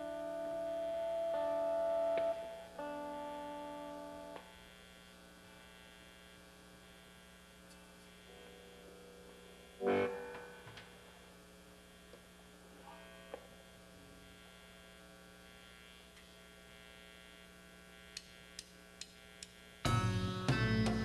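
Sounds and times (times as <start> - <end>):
amplifier electrical hum: 0.0 - 21.0
faint notes: 9.7 - 11.1
small clicks: 18.1 - 19.6.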